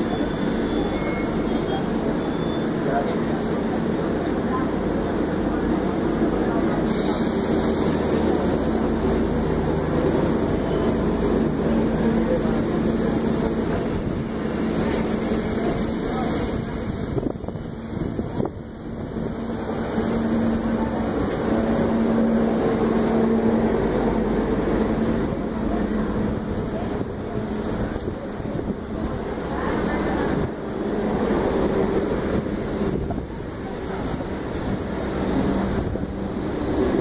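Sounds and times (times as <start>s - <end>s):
train wheels roaring on rails: 0.0s - 37.0s.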